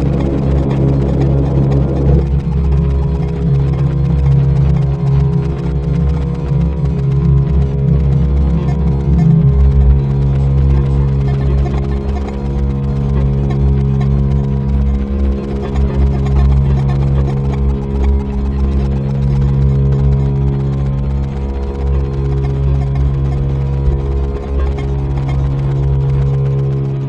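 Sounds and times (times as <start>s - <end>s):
electric bass drone: 0.0s - 27.0s.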